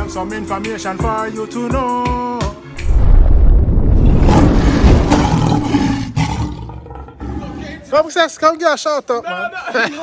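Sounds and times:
lion roar: 0:02.9 - 0:07.7.

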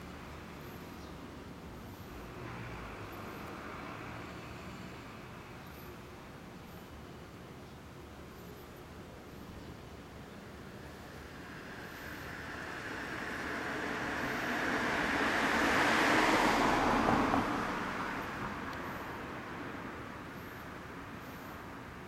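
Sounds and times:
vehicle driving past: 0:10.9 - 0:19.8.

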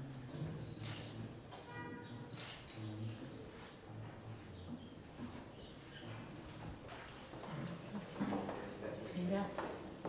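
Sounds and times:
footsteps on tiled floor: 0:09.4 - 0:10.0.

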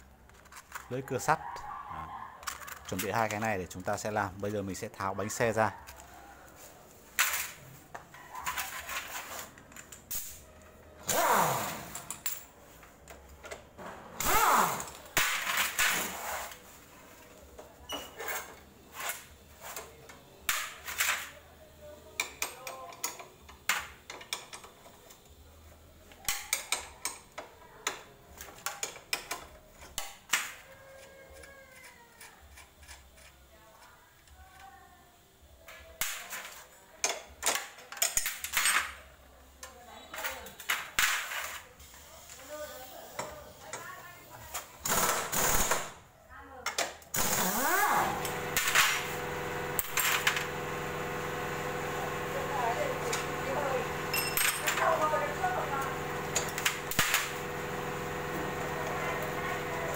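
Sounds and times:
motor humming: 0:47.2 - 0:59.9
metal tools clinking and knocking: 0:54.1 - 0:55.0.

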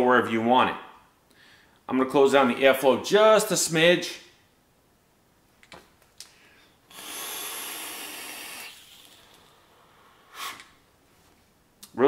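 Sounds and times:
airy hiss of vape draw: 0:06.9 - 0:10.7
breathy puff: 0:09.7 - 0:10.8.

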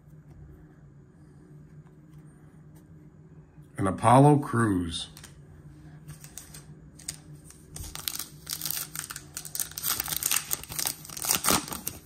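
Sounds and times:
foil wrapper crinkling: 0:06.1 - 0:12.0.

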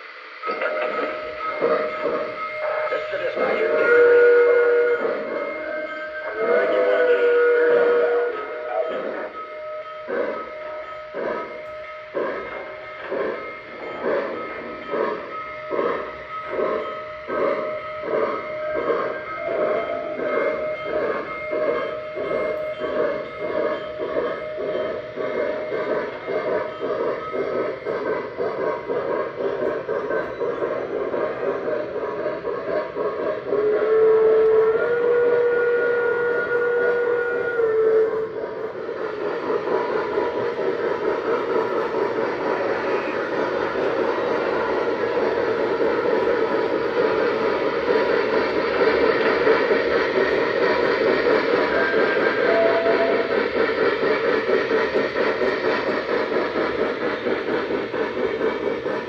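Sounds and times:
electronic steam whistle: 0:00.0 - 0:56.1
electronic steam chuffs: 0:00.0 - 0:59.0.

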